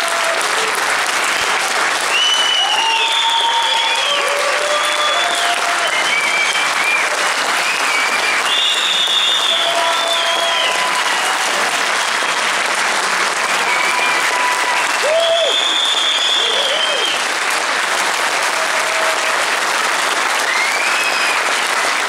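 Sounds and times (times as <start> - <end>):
cheers and whistles: 0.0 - 17.4, 18.4 - 22.0
audience applauding: 0.0 - 22.0.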